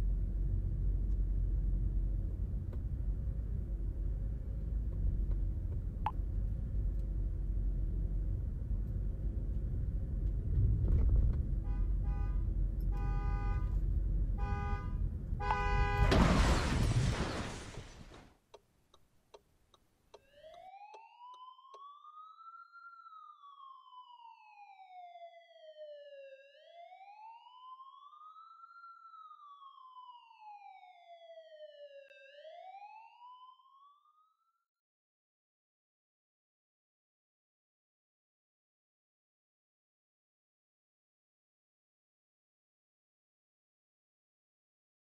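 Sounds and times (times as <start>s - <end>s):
low rumble of car cabin: 0.0s - 16.1s
car horn honking: 11.6s - 13.8s, 14.4s - 16.3s
faint siren wailing: 20.2s - 34.7s.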